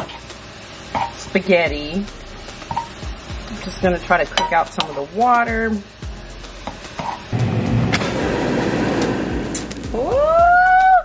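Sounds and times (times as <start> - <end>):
air fryer fan rushing: 0.0 - 10.4.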